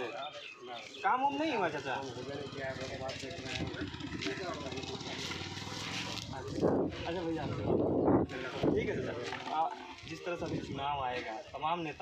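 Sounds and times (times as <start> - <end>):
men talking: 0.0 - 12.0
engine running: 1.9 - 6.9.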